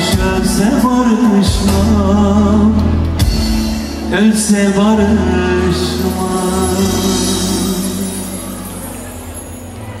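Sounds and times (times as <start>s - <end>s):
live band ringing out: 0.0s - 10.0s.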